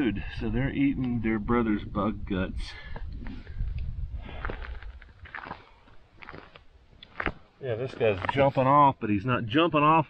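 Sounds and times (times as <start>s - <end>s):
wind rumble on microphone: 0.0s - 5.4s
footsteps crunching on asphalt: 4.2s - 8.5s.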